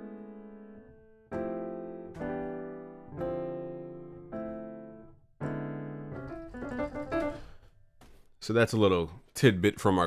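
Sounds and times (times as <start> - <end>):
piano playing chords: 0.0 - 7.6.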